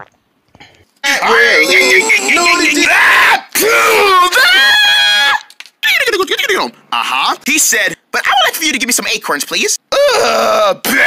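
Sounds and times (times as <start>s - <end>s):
high-pitched voice screaming: 1.0s - 5.5s.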